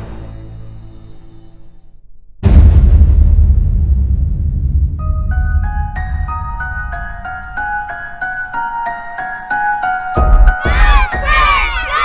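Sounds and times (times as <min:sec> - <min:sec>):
deep rumbling cinematic boom: 0:02.4 - 0:07.9.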